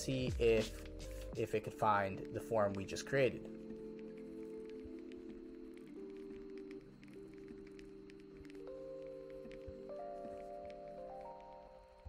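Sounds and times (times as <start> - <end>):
soft held chord music: 0.0 - 12.0.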